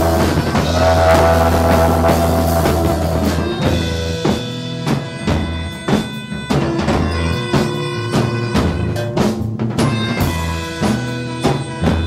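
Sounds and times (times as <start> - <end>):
sustained higher tones: 0.0 - 4.2
drum hits: 0.0 - 5.0
bass guitar note: 0.0 - 11.3.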